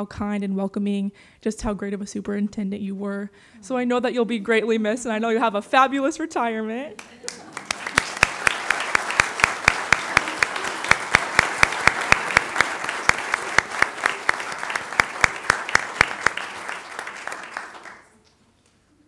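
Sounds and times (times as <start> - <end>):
close hands clapping steadily: 7.0 - 18.2
small group applauding: 7.0 - 18.3.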